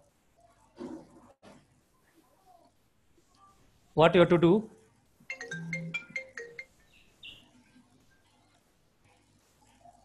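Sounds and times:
electronic ringtone melody: 5.3 - 7.4.

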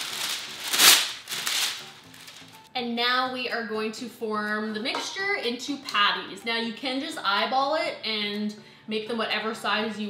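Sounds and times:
parchment paper rustling and crackling: 0.0 - 2.7.

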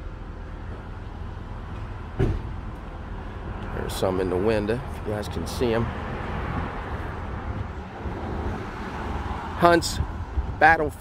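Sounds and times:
low street rumble: 0.0 - 11.0
short thump: 1.8 - 2.6.

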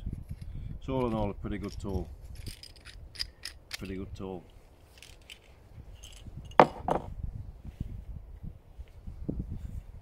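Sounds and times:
metal tools clinking: 0.2 - 4.0, 4.8 - 6.8.

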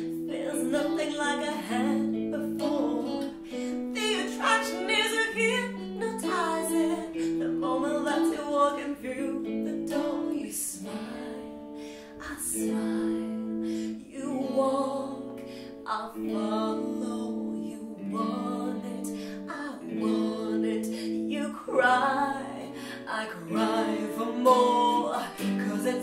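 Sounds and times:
guitar accompaniment: 0.0 - 26.0
woman singing: 0.0 - 26.0.

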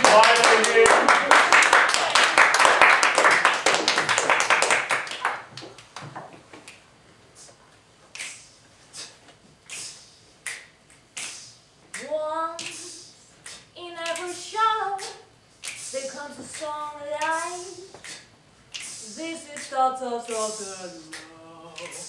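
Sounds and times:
audience applause: 0.0 - 5.6
young female voice singing: 12.0 - 13.1, 13.8 - 15.3, 15.9 - 17.9, 19.0 - 22.0.

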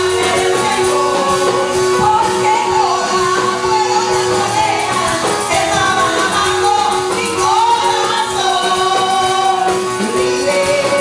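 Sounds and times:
backing voices: 0.0 - 10.8
gospel band instruments: 0.0 - 11.0
woman singing into a microphone: 0.0 - 11.0.

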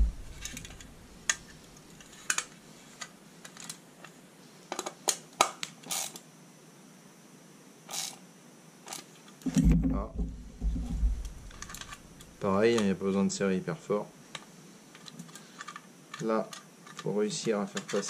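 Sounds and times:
dull handling bump: 9.5 - 11.6.

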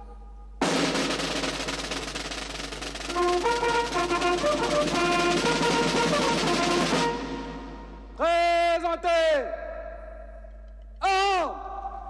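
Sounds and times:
military band brass and drums: 0.6 - 8.2.

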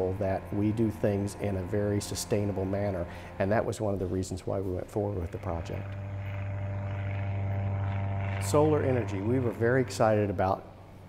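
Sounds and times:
propeller plane flying overhead: 0.0 - 11.0.

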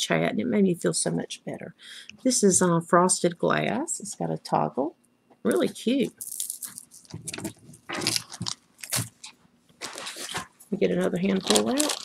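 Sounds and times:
jewelry crinkling and clinking: 5.5 - 12.0.

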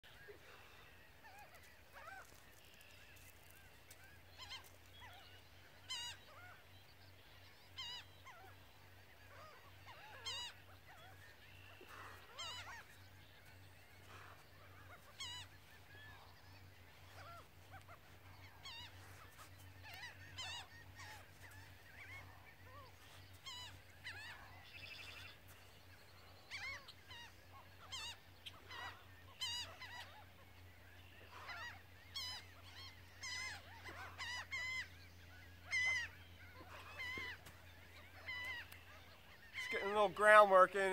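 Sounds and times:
faint bird calls: 0.0 - 40.9.

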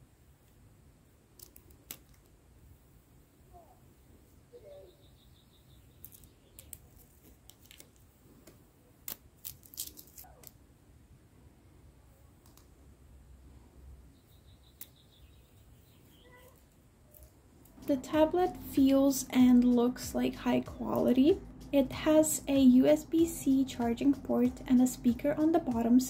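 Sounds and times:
plastic film crackling: 6.0 - 10.6.

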